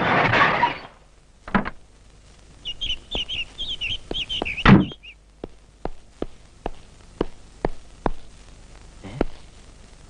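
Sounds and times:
birds chirping: 2.5s - 7.4s
footsteps tapping: 2.7s - 8.4s, 9.2s - 9.5s.

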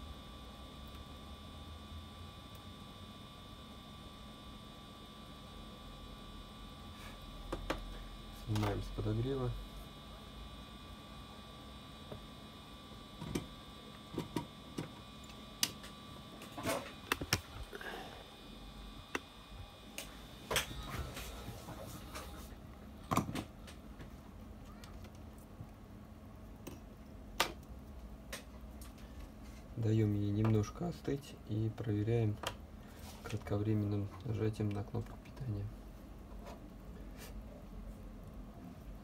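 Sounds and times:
faint high whine: 0.0s - 26.9s, 28.9s - 39.0s.

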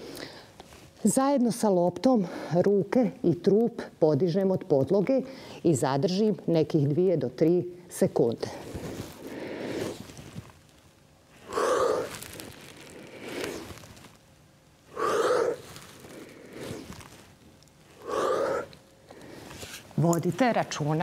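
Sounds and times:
woman breathing hard: 0.0s - 0.6s.

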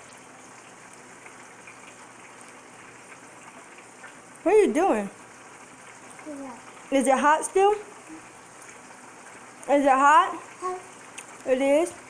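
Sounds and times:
hiss of food cooking: 0.0s - 12.0s.

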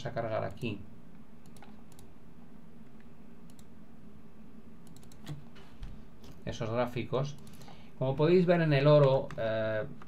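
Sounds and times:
low room hum: 0.0s - 10.0s
computer clicks: 1.4s - 2.1s, 3.4s - 3.7s, 4.8s - 5.4s, 7.3s - 7.8s.

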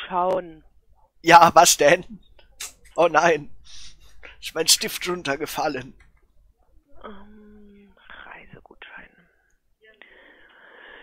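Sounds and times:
breathy whispery sounds: 6.6s - 11.0s.

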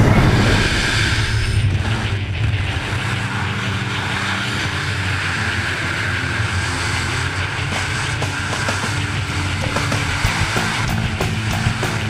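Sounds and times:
wind rushing: 0.0s - 2.2s, 9.6s - 12.0s
propeller plane engines: 0.0s - 12.0s.

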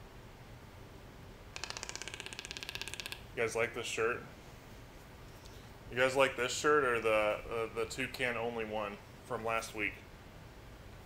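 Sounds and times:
toucan clicking rattle: 1.5s - 3.4s.

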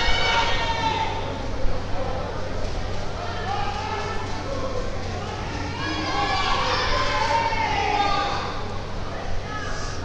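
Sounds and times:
general hall noise: 0.0s - 10.0s
low electrical hum: 0.0s - 10.0s.

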